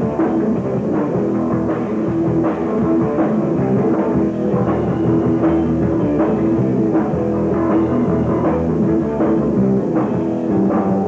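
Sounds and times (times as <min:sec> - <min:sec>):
hard rock band playing live: 0:00.0 - 0:11.0.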